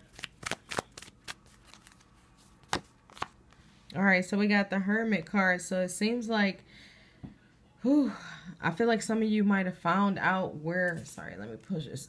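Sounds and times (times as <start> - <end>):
cards being shuffled: 0.0 - 3.4.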